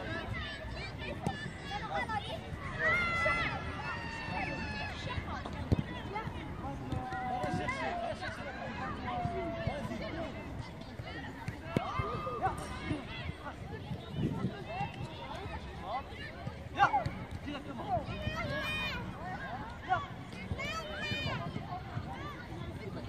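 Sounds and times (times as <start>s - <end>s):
children calling and shouting: 0.0s - 23.0s.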